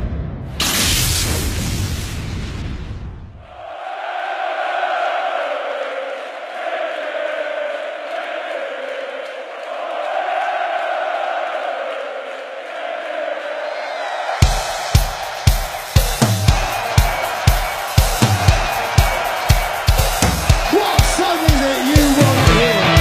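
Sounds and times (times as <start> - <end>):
arena crowd chanting: 3.4 - 23.0.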